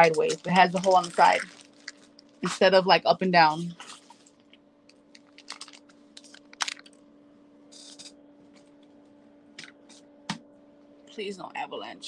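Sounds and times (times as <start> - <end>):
packaging rustle: 0.0 - 2.6, 3.8 - 7.0
faint steady hum: 0.0 - 12.0.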